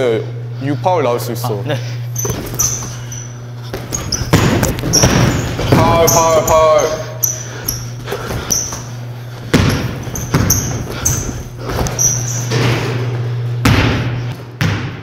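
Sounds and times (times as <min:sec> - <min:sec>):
steady low hum: 0:00.0 - 0:15.0
sneakers squeaking: 0:01.8 - 0:15.0
basketball bouncing on court: 0:02.2 - 0:15.0.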